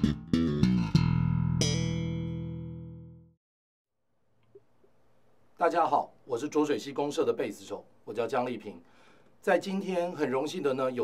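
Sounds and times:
electric bass notes ringing: 0.0 - 3.4.

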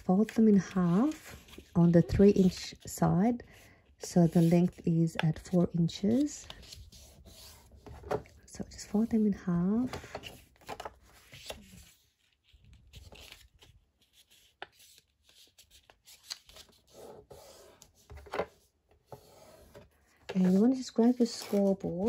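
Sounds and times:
paper rustling: 9.5 - 18.5, 19.6 - 22.0.

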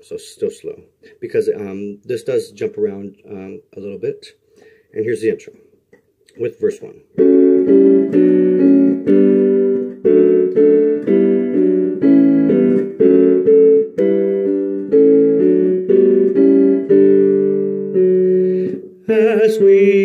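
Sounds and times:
piano block chords: 7.1 - 20.0.

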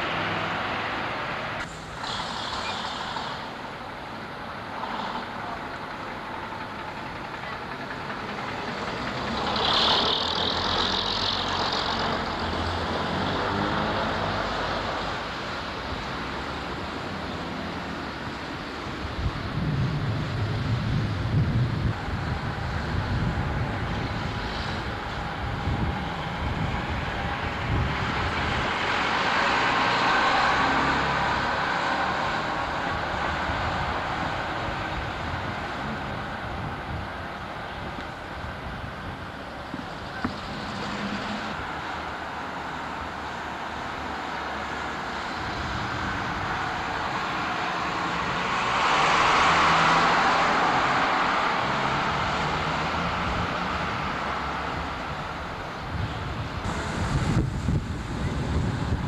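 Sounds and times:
bus passing: 0.0 - 59.0
vehicles passing: 0.0 - 59.0.

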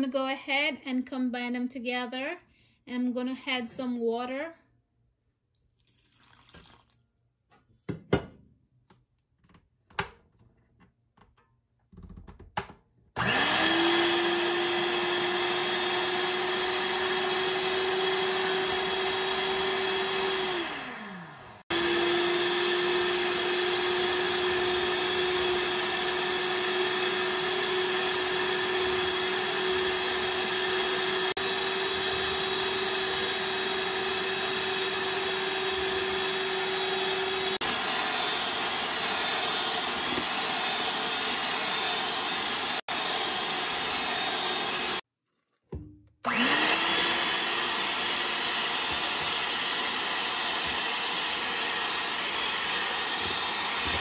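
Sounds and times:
stand mixer motor whirring: 13.2 - 45.0, 46.2 - 54.0.

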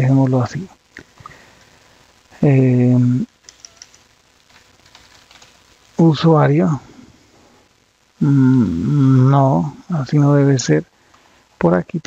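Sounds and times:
keyboard typing: 3.4 - 5.6.

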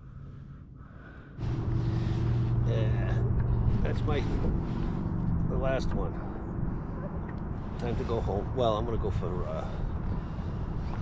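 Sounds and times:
boat motor running: 1.4 - 11.0.

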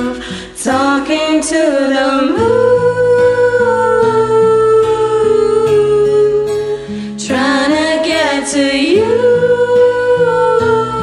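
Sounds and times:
karaoke backing track with guitar: 0.0 - 11.0.

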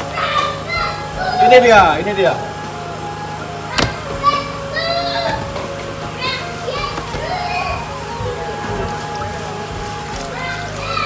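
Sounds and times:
children calling out: 0.0 - 11.0
steady low hum: 0.0 - 11.0.

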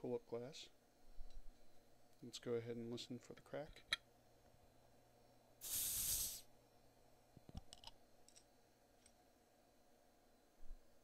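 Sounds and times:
carbonation hiss: 5.6 - 6.5.

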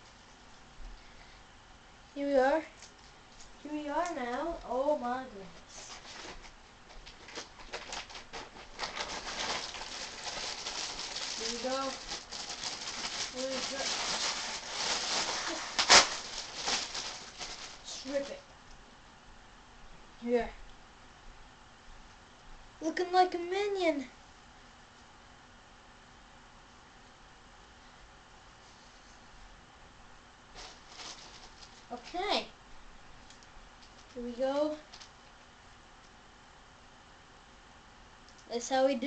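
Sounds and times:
fabric rustling and flapping: 5.8 - 18.4, 30.5 - 32.0.

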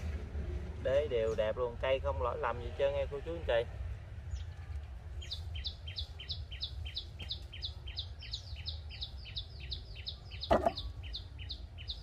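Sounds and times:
bird chirping: 5.2 - 12.0.

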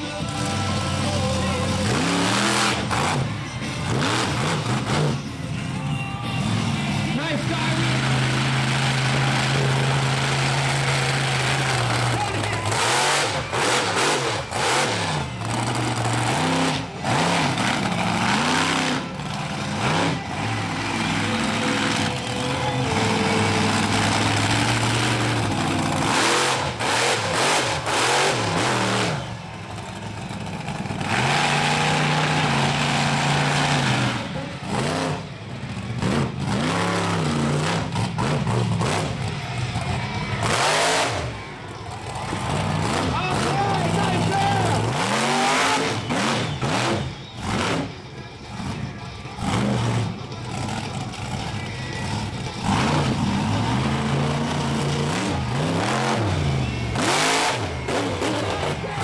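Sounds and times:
monster truck engines revving: 0.0 - 59.0.

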